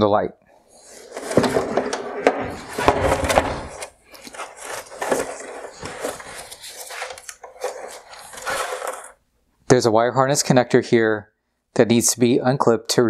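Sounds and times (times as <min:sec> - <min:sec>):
plastic knocks clicks and scrapes: 0:01.1 - 0:09.1.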